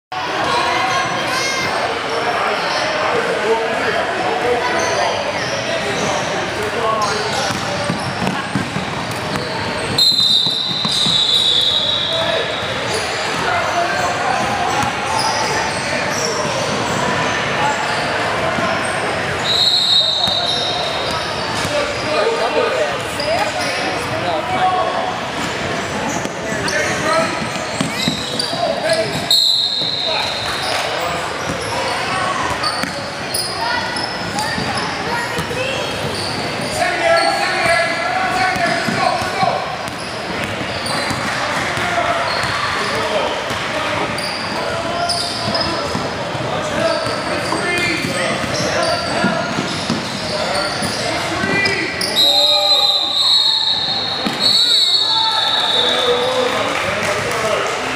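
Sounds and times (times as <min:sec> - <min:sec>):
voices in a gym: 0:00.1 - 0:57.9
referee's whistle blasts: 0:09.9 - 0:12.8, 0:19.4 - 0:21.3, 0:28.0 - 0:30.7, 0:52.0 - 0:56.3.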